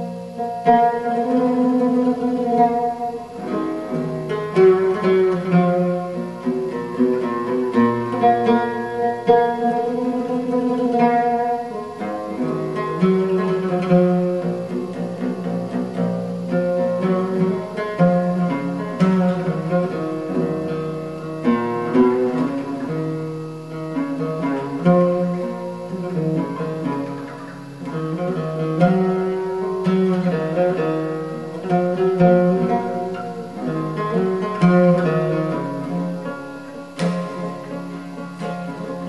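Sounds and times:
oud played solo: 0.0 - 39.0.

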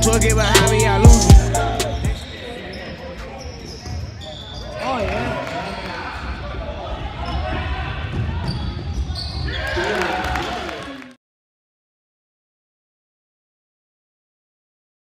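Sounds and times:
voices of players and spectators: 0.0 - 11.1.

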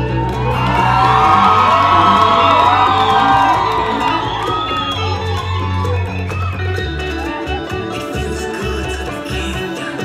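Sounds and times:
audience cheering and whooping: 0.0 - 8.1
loud salsa music: 0.0 - 10.0.

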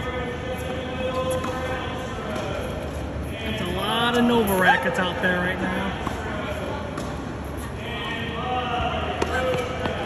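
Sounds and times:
people talking: 0.0 - 10.0
tennis balls struck and bouncing: 0.6 - 2.7, 5.9 - 7.4.

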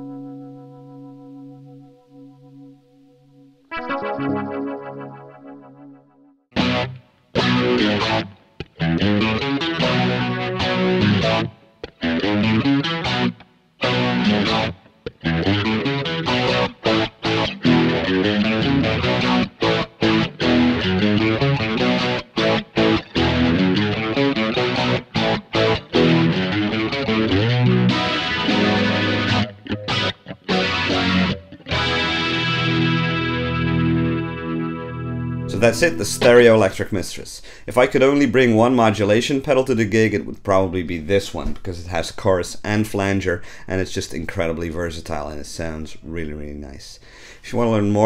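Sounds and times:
electric guitar chords with flanger: 0.0 - 36.7.

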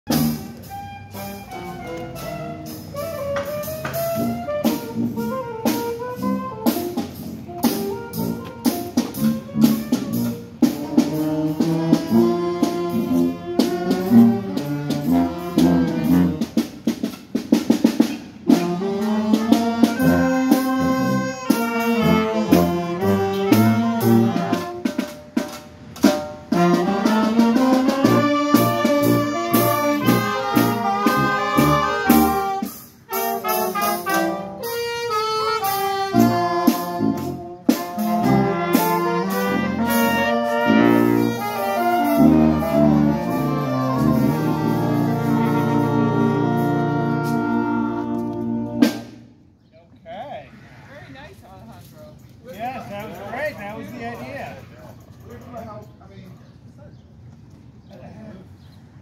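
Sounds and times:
street brass band playing: 0.0 - 49.6.

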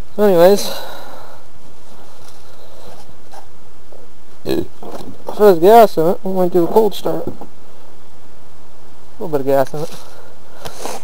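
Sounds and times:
steady background hiss: 0.0 - 11.0
man talking: 0.2 - 0.9, 4.4 - 7.4, 9.2 - 10.0.

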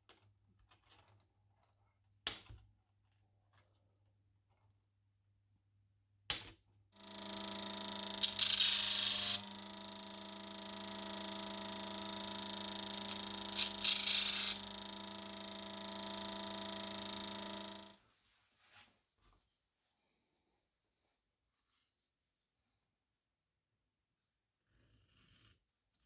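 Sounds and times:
disc sander motor whine: 7.0 - 18.0
rasping grind on sanding disc: 7.1 - 14.7.

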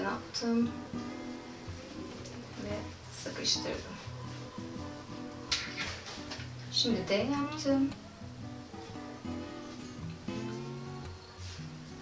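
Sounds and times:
soft acoustic guitar instrumental: 0.0 - 12.0.

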